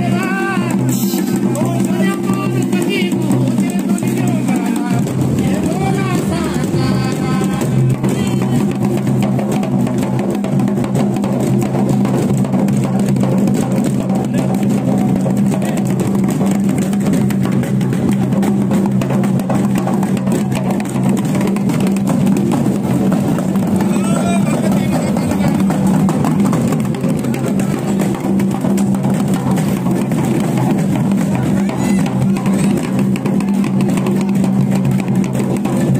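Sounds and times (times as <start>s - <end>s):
voices: 0.0s - 9.0s, 23.6s - 26.8s, 31.1s - 34.0s
fast drumming: 0.0s - 35.9s
music: 0.0s - 35.9s.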